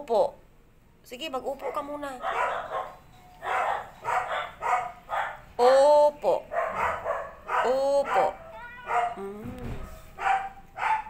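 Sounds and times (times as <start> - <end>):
cat meowing raspily: 7.7 - 9.2.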